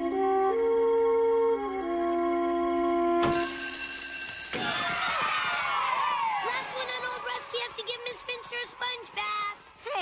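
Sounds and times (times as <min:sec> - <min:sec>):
electric school bell ringing: 0:03.2 - 0:08.0
children shouting and cheering: 0:04.6 - 0:10.0.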